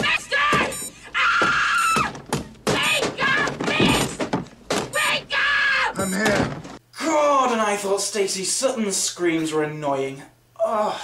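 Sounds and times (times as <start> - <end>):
woman screaming: 0.0 - 4.2, 4.9 - 6.1.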